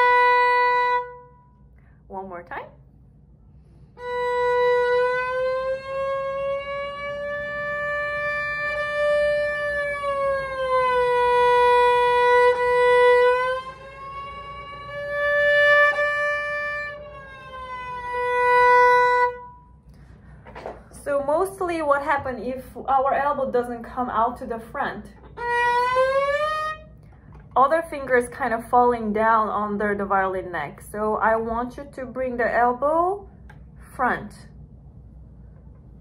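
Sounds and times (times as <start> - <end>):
violin sliding bowed note: 0.0 - 1.5, 3.9 - 19.8, 25.2 - 27.5.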